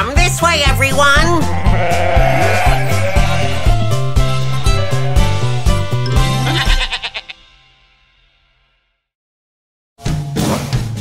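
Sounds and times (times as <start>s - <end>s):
children's song music with bass beat: 0.0s - 6.9s
cartoon sheep bleating: 1.4s - 7.5s.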